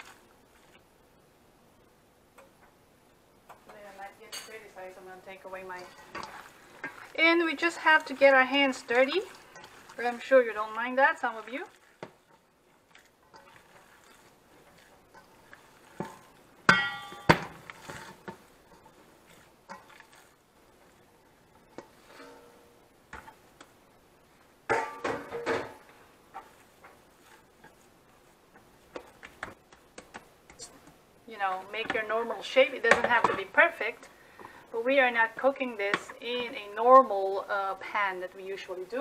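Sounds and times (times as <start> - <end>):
faint handling sounds: 0.0 - 1.0, 2.6 - 31.0
metal bowl knocking and clinking: 16.0 - 17.7, 21.8 - 23.4, 24.7 - 25.9.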